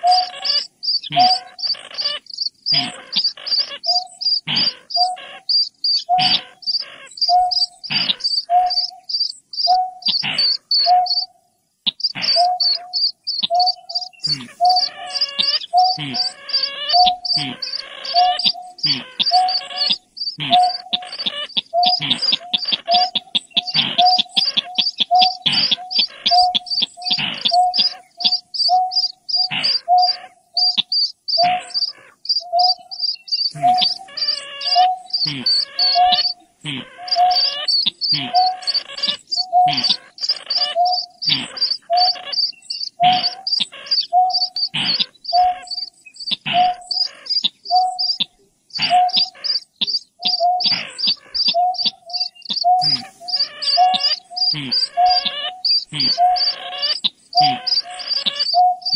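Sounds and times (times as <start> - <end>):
fast high bird chirping: 0.0 - 58.9
harsh rasping bird calls: 0.0 - 58.9
low bird hoot: 0.0 - 58.9.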